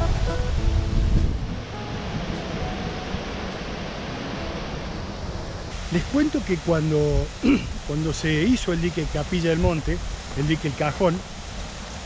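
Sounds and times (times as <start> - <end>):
faint musical notes: 0.0 - 5.5
wind buffeting microphone: 0.0 - 5.8
flowing water: 0.0 - 12.0
wind: 0.0 - 12.0.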